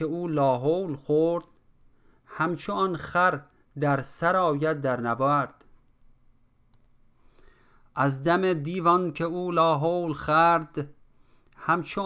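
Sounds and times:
faint click: 0:06.7 - 0:07.0.

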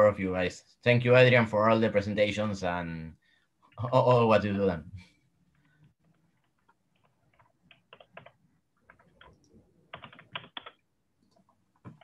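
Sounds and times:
typing on keyboard: 0:06.4 - 0:12.0.

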